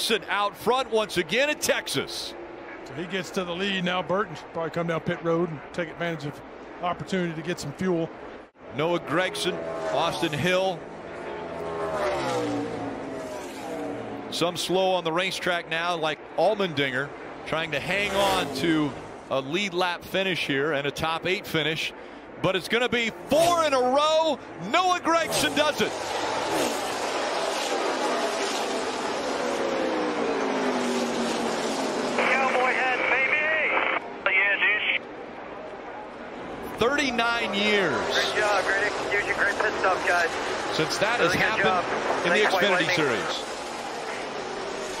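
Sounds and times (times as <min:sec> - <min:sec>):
race car engine passing by: 0:08.8 - 0:14.4, 0:17.8 - 0:19.2, 0:25.2 - 0:33.1
voice over radio: 0:32.2 - 0:35.1, 0:36.8 - 0:43.4.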